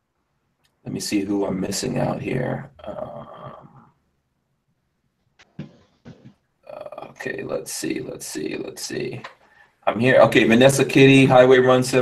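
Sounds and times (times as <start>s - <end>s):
man saying uh: 0.9s - 3.8s, 6.7s - 9.2s.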